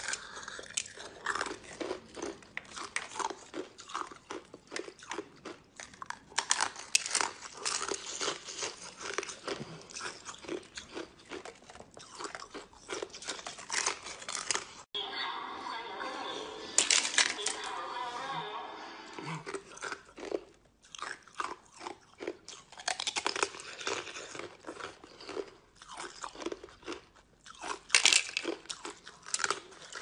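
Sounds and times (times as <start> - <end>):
ice crunching being chewed: 0.0 - 14.8, 19.2 - 30.0.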